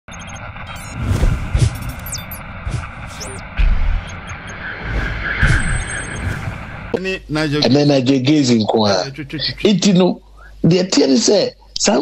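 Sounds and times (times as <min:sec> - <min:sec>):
short high sweeps: 0:00.7 - 0:07.0
whooshes: 0:00.7 - 0:07.0.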